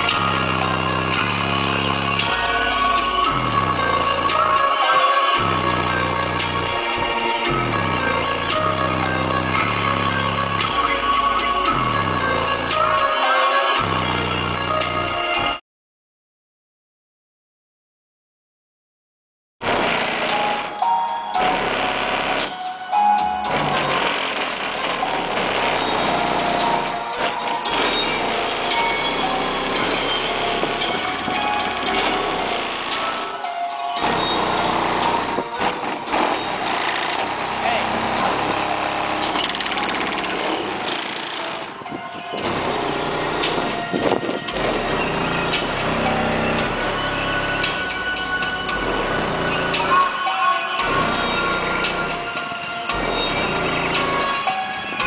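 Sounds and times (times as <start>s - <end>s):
loud music through car subwoofers: 0.0s - 15.6s, 19.6s - 55.0s.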